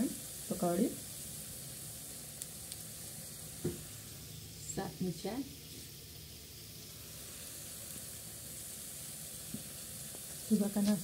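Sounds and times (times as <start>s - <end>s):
food sizzling in hot oil: 0.0s - 11.0s
faint crackles of oil: 1.0s - 4.1s, 7.0s - 11.0s.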